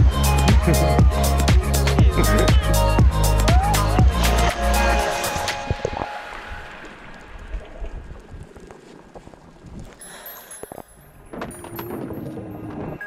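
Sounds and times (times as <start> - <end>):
music: 0.0 - 7.0
muffled underwater rush: 5.0 - 9.1.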